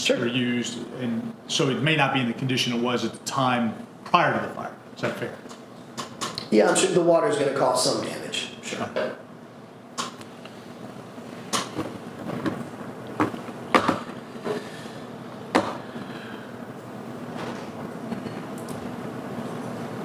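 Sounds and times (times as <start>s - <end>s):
room tone low hum: 0.0s - 20.0s
handling knocks and clicks: 11.5s - 14.2s.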